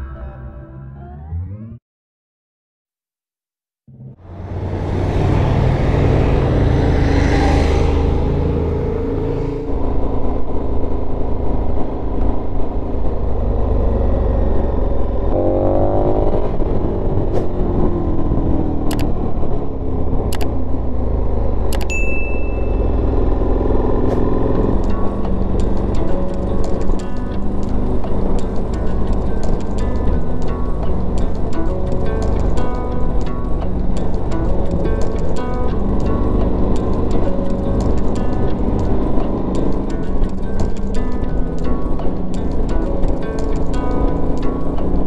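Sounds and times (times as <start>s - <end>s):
motorcycle engine running: 4.2s - 45.0s
sharp clicks: 18.9s - 19.1s, 20.3s - 20.5s, 21.7s - 21.9s.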